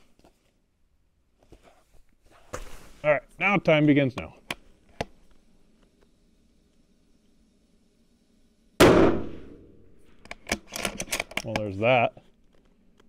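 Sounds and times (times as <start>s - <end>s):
rifle shot with ringing tail: 8.8s - 9.7s.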